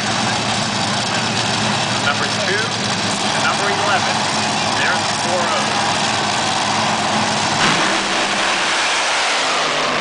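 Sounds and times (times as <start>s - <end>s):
crowd noise: 0.0s - 10.0s
engines running: 0.0s - 10.0s.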